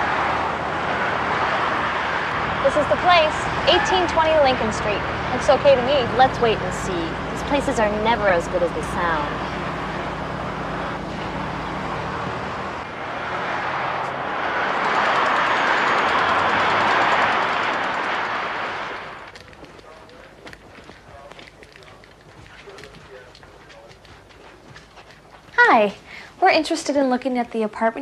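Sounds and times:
car driving past: 0.0 - 23.9
footsteps on hallway floor: 19.3 - 26.0.

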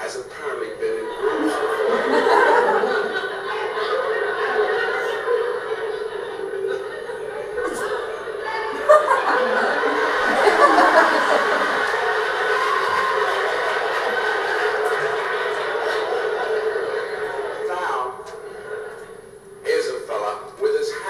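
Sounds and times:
muffled voices from loudspeaker: 0.0 - 10.4, 19.6 - 21.0
chuckling from loudspeaker: 0.8 - 19.2.

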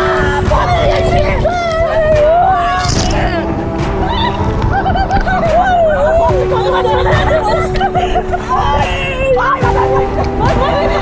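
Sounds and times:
background music with held chords: 0.0 - 11.0.

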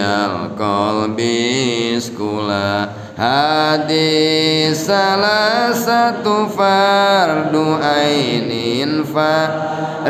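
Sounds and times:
man chanting melodic recitation: 0.0 - 9.6.

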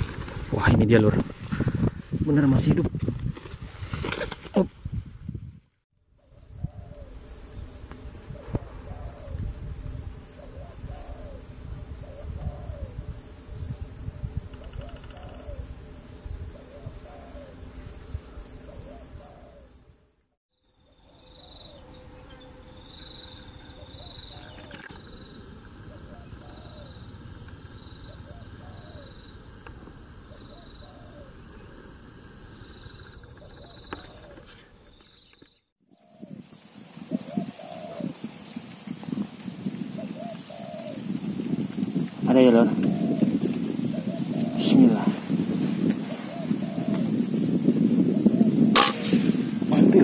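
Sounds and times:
insects trilling: 6.1 - 50.0
doves cooing: 6.2 - 7.3, 8.2 - 9.5, 10.2 - 13.1, 14.5 - 15.9, 16.5 - 17.8, 18.4 - 19.8, 23.6 - 35.0, 36.0 - 50.0.

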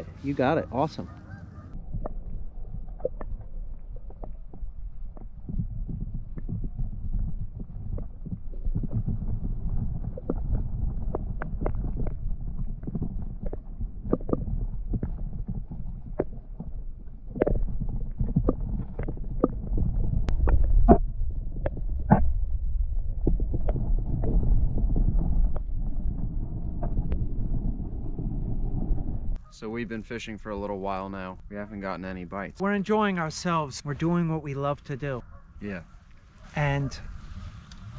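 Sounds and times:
muffled underwater rumble: 0.0 - 32.6
sharp underwater clicks: 1.0 - 27.6.

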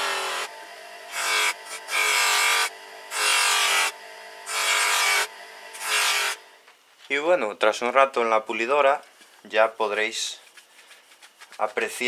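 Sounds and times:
bench grinder motor hum: 0.0 - 6.6.

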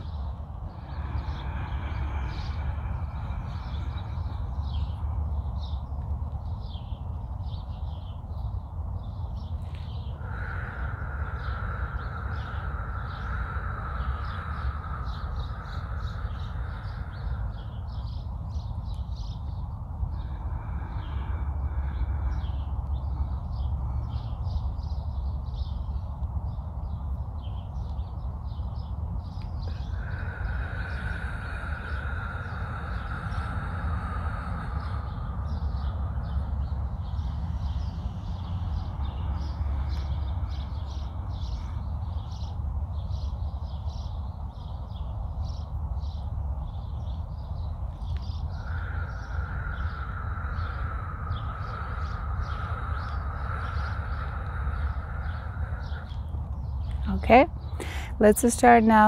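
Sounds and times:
person exhaling slowly: 0.0 - 7.6, 9.4 - 26.1, 26.8 - 46.2, 46.8 - 58.2
birds chirping: 0.0 - 59.0
steady low rumble: 0.0 - 59.0.

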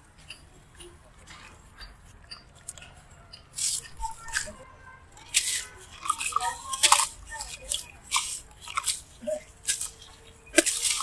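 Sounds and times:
sand block crunching: 5.2 - 11.0.

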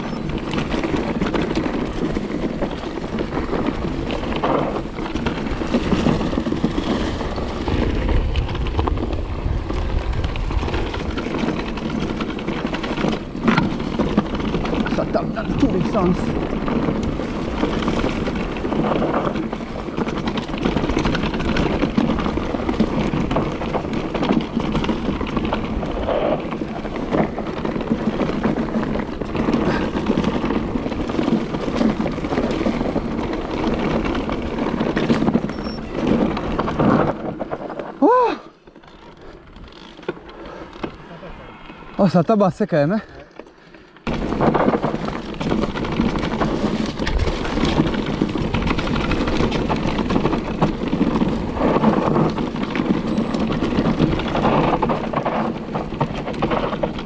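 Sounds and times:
bike knocking and rattling: 0.0 - 57.0
tyres rushing on dirt: 0.0 - 57.0
wind on microphone: 2.5 - 11.6.

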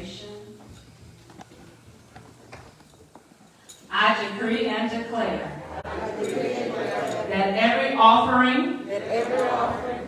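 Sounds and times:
woman speaking over microphone: 0.0 - 0.5, 3.9 - 5.6, 7.3 - 9.8.

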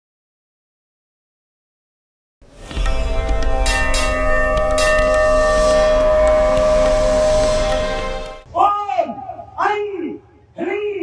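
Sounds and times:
temple bells ringing: 3.0 - 8.4.

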